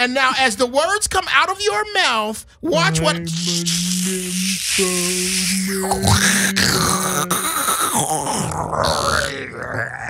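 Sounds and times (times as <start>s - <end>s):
person groaning and moaning: 2.7s - 10.0s.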